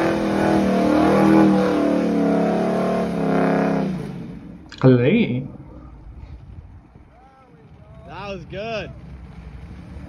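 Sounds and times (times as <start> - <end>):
car engine rumbling: 0.0 - 10.0.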